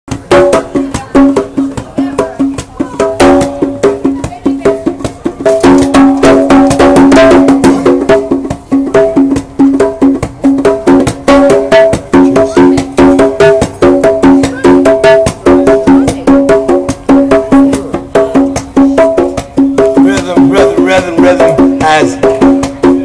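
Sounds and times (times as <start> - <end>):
congas played by hand: 0.1 - 23.0.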